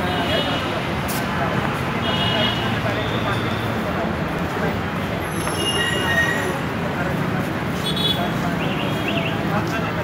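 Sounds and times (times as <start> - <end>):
crowd noise: 0.0 - 10.0
street noise: 0.0 - 10.0.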